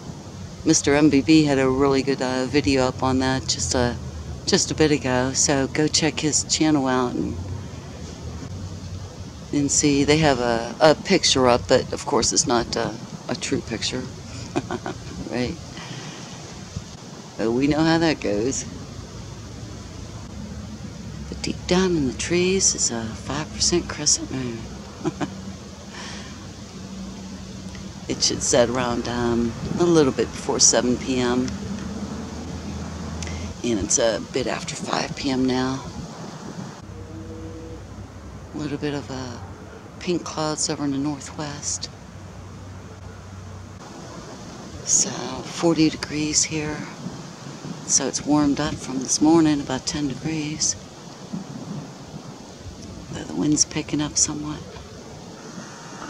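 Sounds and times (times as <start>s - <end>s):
wind buffeting microphone: 0.0s - 41.8s, 42.5s - 56.0s
faint outdoor background noise: 0.0s - 56.0s
steady low hum: 0.0s - 56.0s.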